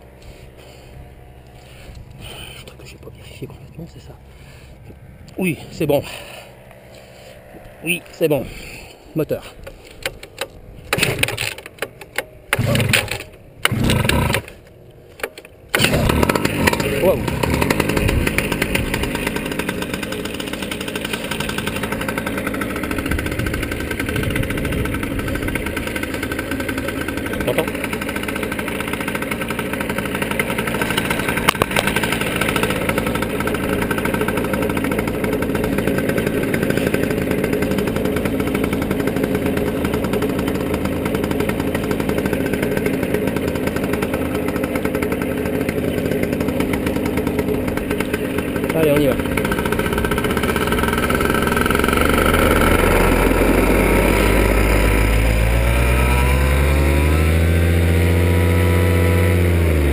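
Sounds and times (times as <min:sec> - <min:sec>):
paramotor engine idling: 0:00.0 - 0:11.7, 0:12.3 - 0:59.9.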